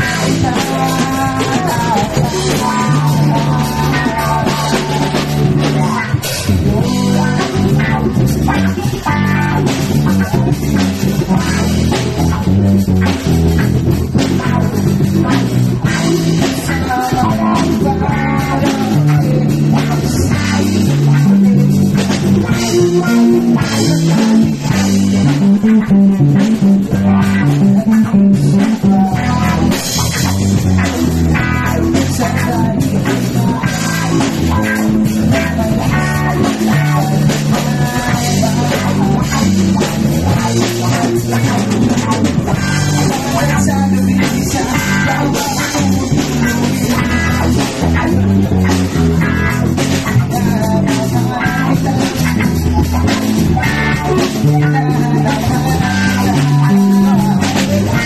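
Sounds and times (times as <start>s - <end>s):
bass guitar line: 0.0s - 58.0s
drums: 0.0s - 58.0s
electric guitar: 0.0s - 58.0s.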